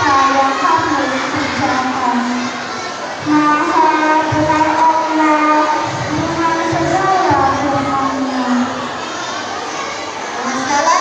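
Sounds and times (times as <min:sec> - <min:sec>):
child chanting melodically: 0:00.0 - 0:11.0.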